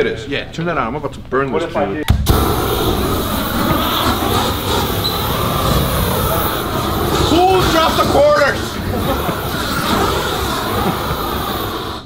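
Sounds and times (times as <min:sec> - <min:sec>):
voices: 0:01.5 - 0:12.0
flamethrower burst: 0:02.1 - 0:12.0
loud rush of flame: 0:02.2 - 0:12.0
person laughing: 0:08.6 - 0:11.1.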